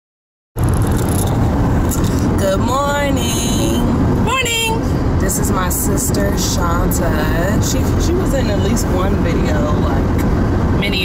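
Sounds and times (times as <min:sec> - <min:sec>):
car road noise rumble: 0:00.6 - 0:11.0.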